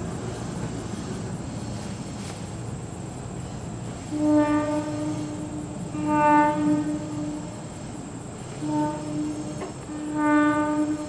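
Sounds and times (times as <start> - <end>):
train horn blasts: 4.0 - 11.0.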